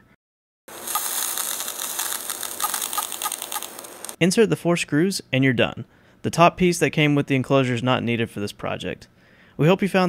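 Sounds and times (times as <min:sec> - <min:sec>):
crackling interference buzz: 0:00.7 - 0:04.2
thin high whine: 0:00.7 - 0:04.2.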